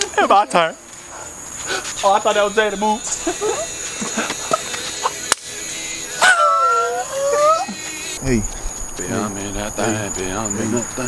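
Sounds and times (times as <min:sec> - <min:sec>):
crickets chirping: 0:00.0 - 0:11.0
long howl: 0:06.2 - 0:07.8.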